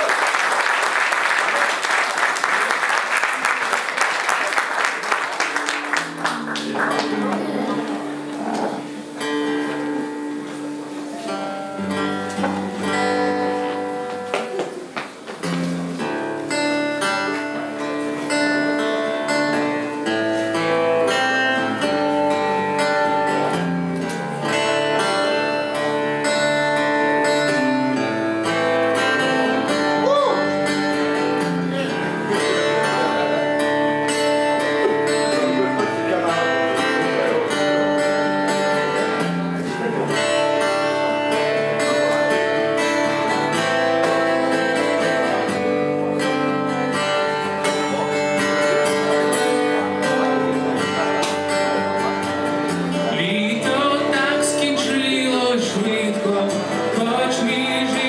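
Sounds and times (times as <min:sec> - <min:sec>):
acoustic guitar strummed: 0:05.6 - 0:58.0.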